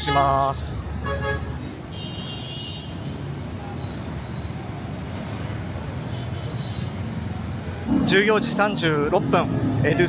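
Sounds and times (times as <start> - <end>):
street traffic hum: 0.0 - 10.0.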